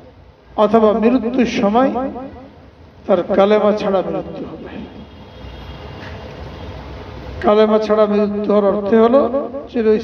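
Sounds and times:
man preaching: 0.6 - 5.1, 7.4 - 10.0.

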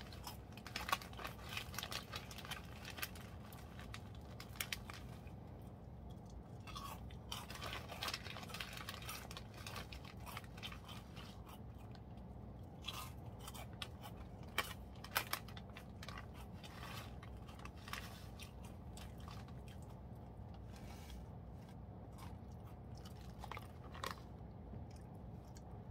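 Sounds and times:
person chewing crunchy snack: 0.0 - 20.7, 21.7 - 25.9
faint low hum: 0.0 - 25.9.

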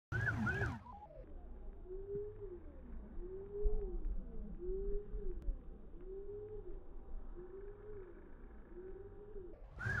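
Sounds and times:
bird cooing: 0.1 - 0.9, 7.4 - 10.0.

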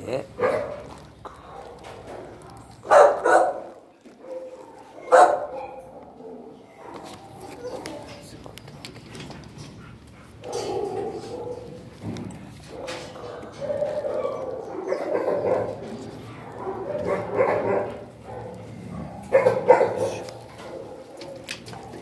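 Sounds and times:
dogs barking and whining: 0.0 - 8.4, 9.2 - 22.0.

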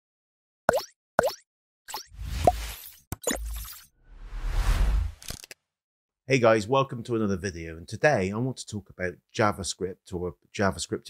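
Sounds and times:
cartoon plop sound effects: 0.7 - 2.1.

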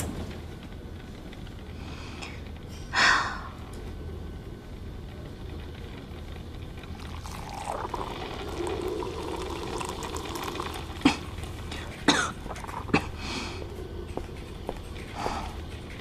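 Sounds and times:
espresso machine dispensing coffee: 7.0 - 11.0
person coughing: 11.0 - 13.2.

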